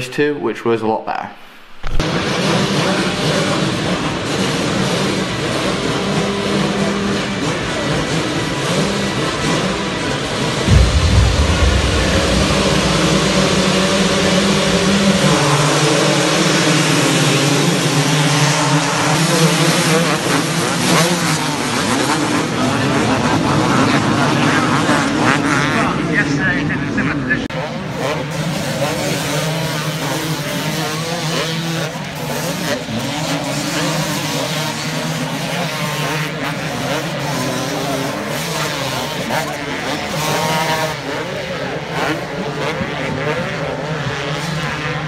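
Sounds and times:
motocross bikes revving: 2.0 - 10.7, 27.5 - 45.0
loud low rumble: 10.6 - 17.0.

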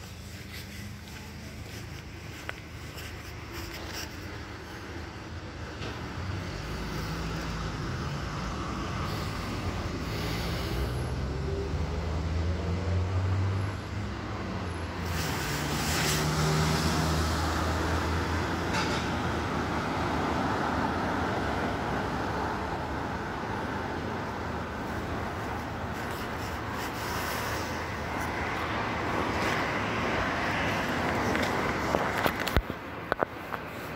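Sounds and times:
vehicles passing: 0.0 - 33.9.

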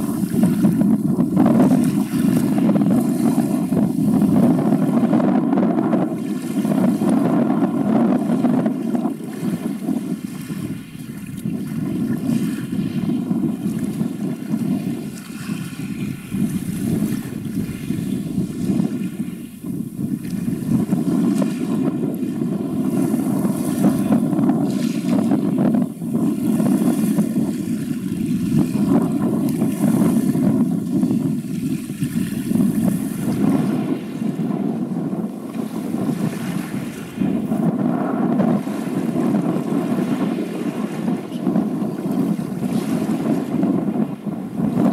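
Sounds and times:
faint ship engine hum: 0.0 - 42.7
wind rumbling on microphone: 0.0 - 44.9.

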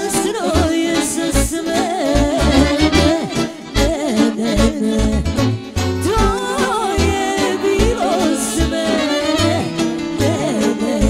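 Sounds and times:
accordion melody: 0.0 - 11.0
violin: 0.0 - 11.0
keyboard bass beat: 2.2 - 6.4.

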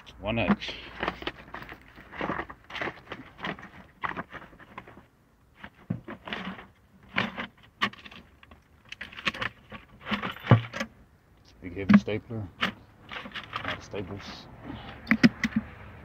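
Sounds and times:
items rustling and clattering: 0.0 - 11.0, 11.8 - 15.8.

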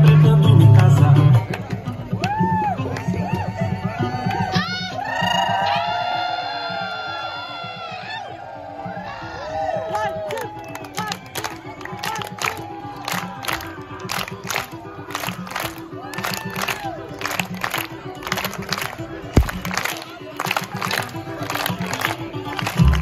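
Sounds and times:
crowd voices and cheering: 0.0 - 23.0
samba music with percussion: 9.0 - 23.0.

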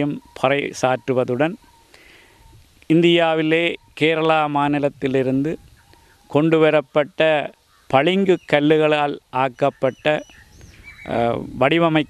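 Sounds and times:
man talking: 0.0 - 1.6, 2.9 - 5.6, 6.3 - 10.3, 11.0 - 12.0.

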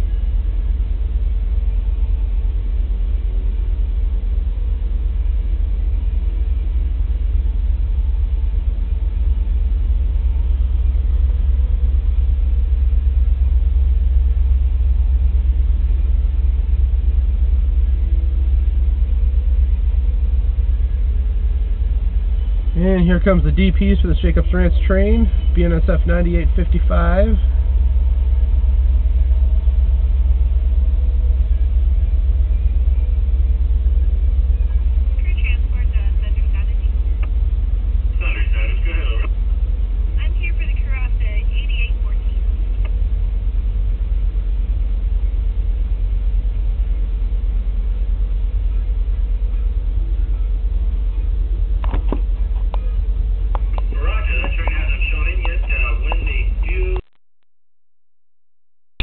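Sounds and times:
train rumbling past: 0.0 - 57.0
constant mid-pitched tone: 0.0 - 57.1.

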